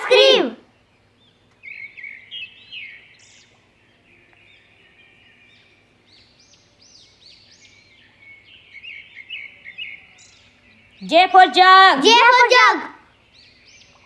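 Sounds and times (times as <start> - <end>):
small birds chirping: 0.0 - 14.0.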